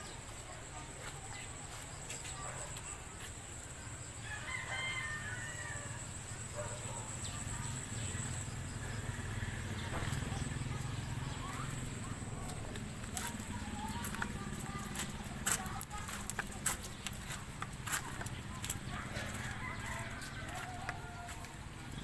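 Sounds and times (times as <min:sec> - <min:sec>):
rooster crowing: 0:04.2 - 0:06.3, 0:18.9 - 0:21.6.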